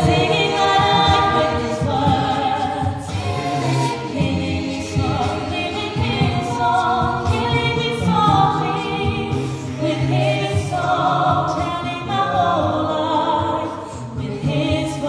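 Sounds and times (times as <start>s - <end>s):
a cappella group singing: 0.0s - 15.0s.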